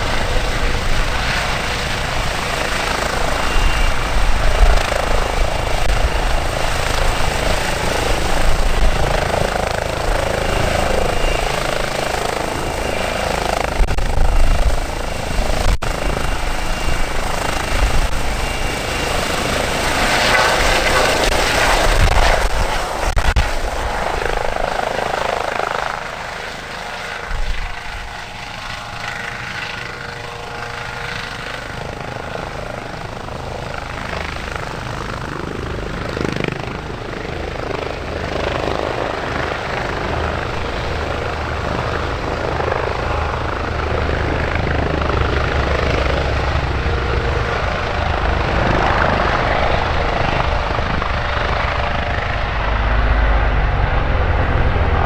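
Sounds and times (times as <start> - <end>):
helicopter rotor and turbine whine: 0.0 - 55.0.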